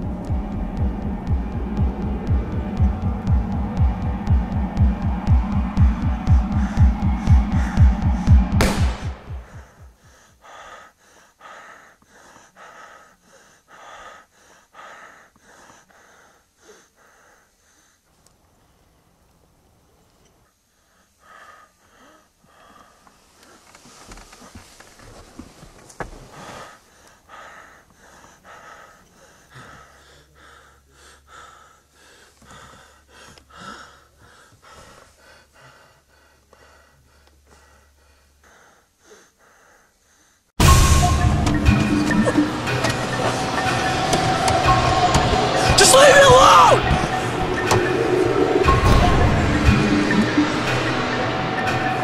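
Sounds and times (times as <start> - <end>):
throbbing film score pulse: 0.0 - 10.1, 40.6 - 52.0
man breathing heavily: 0.0 - 18.2, 20.5 - 24.8, 26.2 - 40.6, 42.4 - 51.8
sharp hit: 1.3 - 9.9, 40.6 - 52.0
man panting and gasping: 6.3 - 18.1, 20.7 - 23.4, 26.2 - 40.5.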